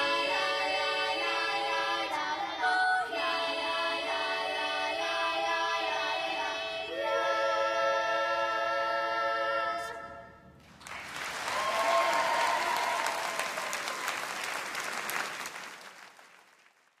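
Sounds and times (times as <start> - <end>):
children's choir singing: 0.0 - 10.4
audience applauding: 10.6 - 17.0.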